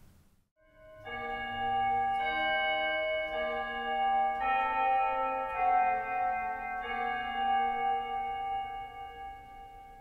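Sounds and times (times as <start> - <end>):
organ chords: 0.6 - 10.0.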